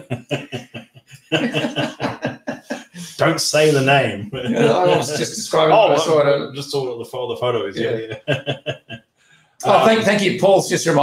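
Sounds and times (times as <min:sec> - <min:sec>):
man laughing: 0:00.0 - 0:06.0, 0:07.8 - 0:09.0.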